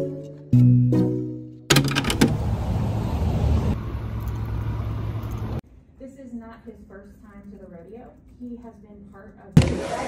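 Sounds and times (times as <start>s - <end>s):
car passing by: 2.4s - 5.6s.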